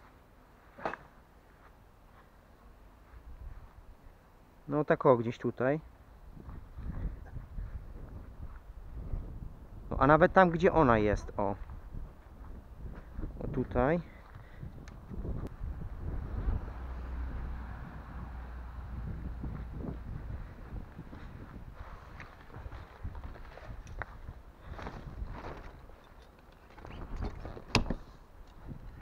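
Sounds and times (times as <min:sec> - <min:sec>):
wind rumble on microphone: 0:03.2 - 0:04.0, 0:06.1 - 0:26.0, 0:26.7 - 0:29.0.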